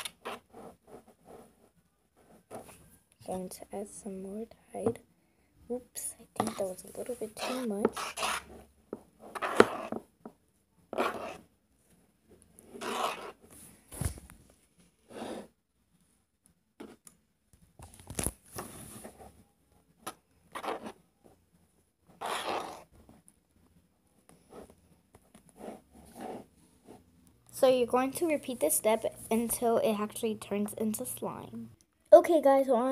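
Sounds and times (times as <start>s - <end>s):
spoon stirring slime: 6.4s - 10.0s.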